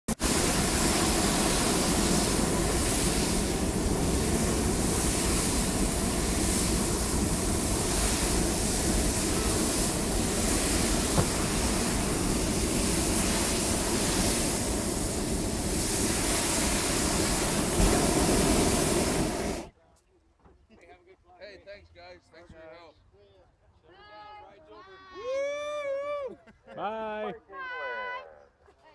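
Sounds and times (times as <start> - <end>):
propane burner rushing blast: 0.1 - 19.7.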